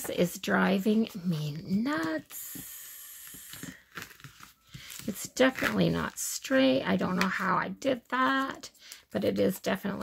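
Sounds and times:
paper crinkling: 0:03.5 - 0:06.2.

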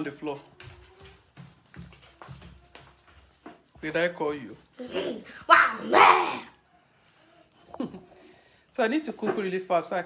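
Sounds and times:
soft knocks and rustles: 0:00.1 - 0:04.6.

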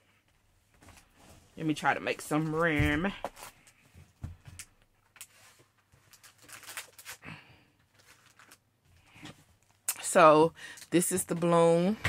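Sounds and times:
plastic wrapping rustling: 0:04.6 - 0:09.8.

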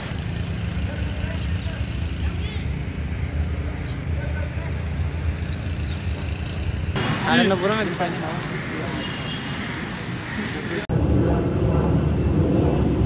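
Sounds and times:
city traffic rumble: 0:00.0 - 0:13.0.

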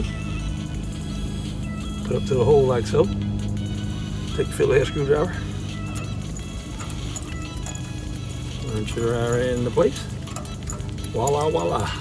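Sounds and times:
background music with low notes: 0:00.0 - 0:12.0.

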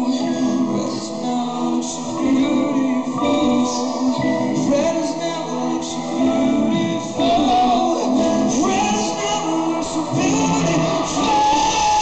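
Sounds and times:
live pop-rock band with vocals: 0:00.0 - 0:12.0.

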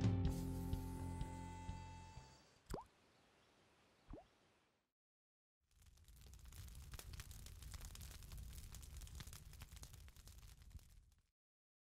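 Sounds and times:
water plop: 0:02.7 - 0:02.9
campfire crackling: 0:05.7 - 0:11.3.

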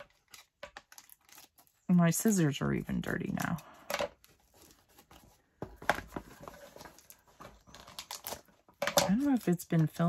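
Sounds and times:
paper and tape crackling: 0:00.0 - 0:10.0.

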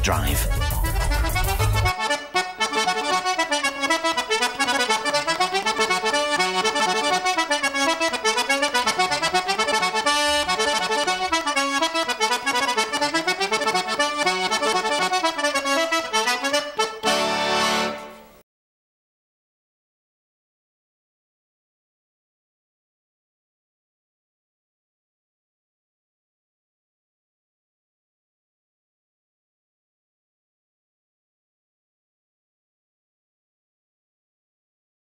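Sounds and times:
button accordion playing lively tune: 0:00.0 - 0:18.4.

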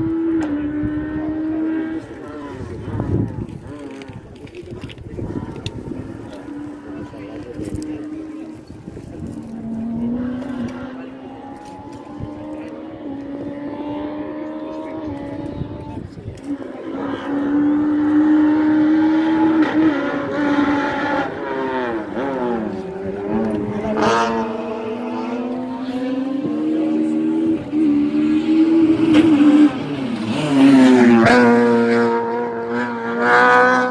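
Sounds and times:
racing car engine revving: 0:00.0 - 0:33.9.

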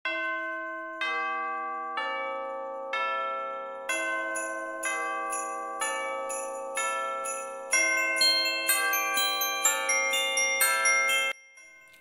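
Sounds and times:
bell chimes: 0:00.1 - 0:12.0.

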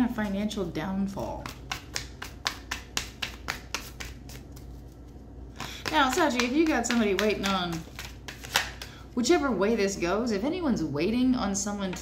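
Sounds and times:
cards being flicked: 0:01.4 - 0:05.0, 0:05.6 - 0:09.0.

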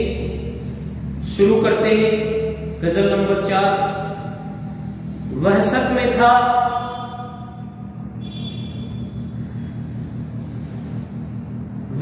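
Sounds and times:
steady low hum: 0:00.0 - 0:12.0
faint rumble: 0:06.8 - 0:12.0.

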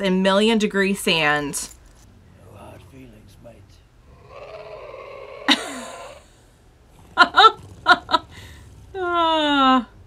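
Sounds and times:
breathy throaty vocal sound: 0:05.7 - 0:09.4.

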